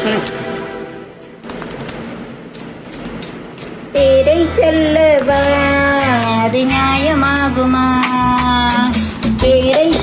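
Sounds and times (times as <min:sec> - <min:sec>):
faint backing music: 0:00.0 - 0:10.0
metallic clinking strikes: 0:00.2 - 0:03.8.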